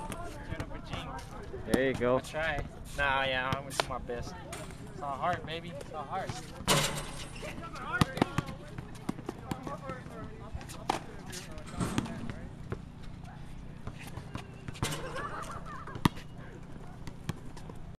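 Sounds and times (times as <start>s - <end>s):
shoes on court: 4.6s - 18.0s.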